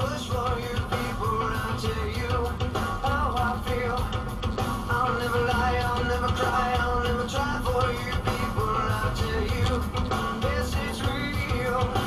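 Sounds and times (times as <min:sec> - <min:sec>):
rock song on car radio: 0:00.0 - 0:12.0.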